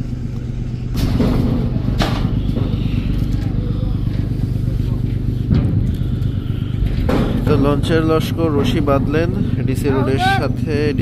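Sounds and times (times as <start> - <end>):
boat diesel engine droning: 0.0 - 11.0.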